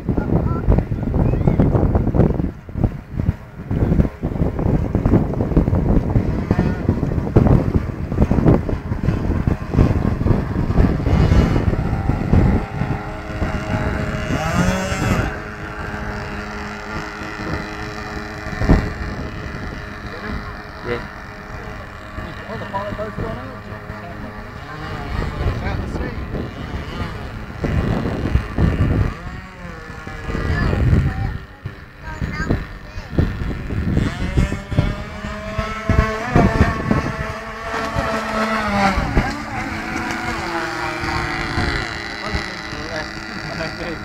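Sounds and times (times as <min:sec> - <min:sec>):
boat motor humming: 0:00.0 - 0:44.0
wind buffeting microphone: 0:00.0 - 0:44.0.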